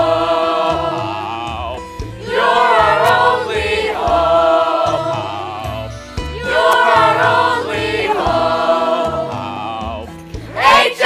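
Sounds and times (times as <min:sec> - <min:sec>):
ensemble singing in harmony: 0:00.0 - 0:11.0
instrumental accompaniment: 0:00.0 - 0:11.0.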